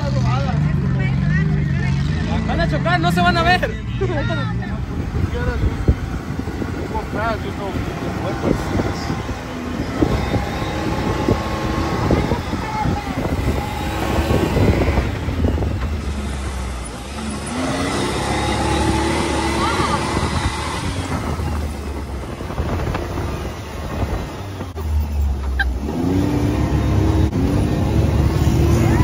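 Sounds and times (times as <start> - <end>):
vehicle engine rumbling: 0.0 - 29.0.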